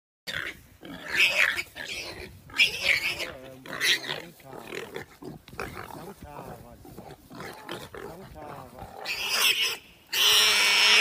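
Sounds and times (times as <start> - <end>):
warthog squealing in distress: 0.3 - 11.0.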